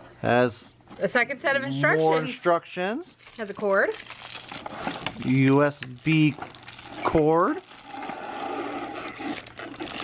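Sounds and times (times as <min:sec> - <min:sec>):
plastic bag crinkling: 0:03.1 - 0:10.0.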